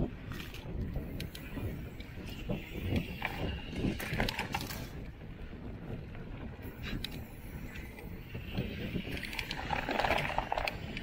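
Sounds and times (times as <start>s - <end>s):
bike tyres rolling over dirt: 0.0s - 11.0s
wind buffeting microphone: 0.0s - 11.0s.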